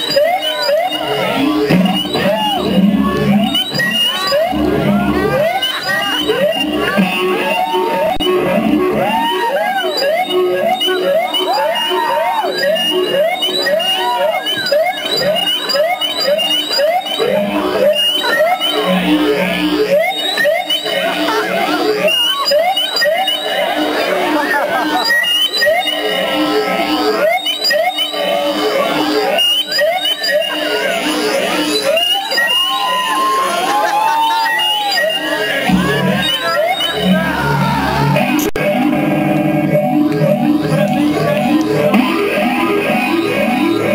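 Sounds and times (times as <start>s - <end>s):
feedback-like tones: 0.0s - 43.9s.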